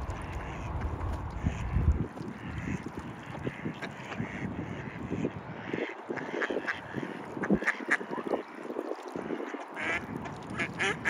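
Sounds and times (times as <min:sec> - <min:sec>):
ducks quacking: 0:00.0 - 0:11.0.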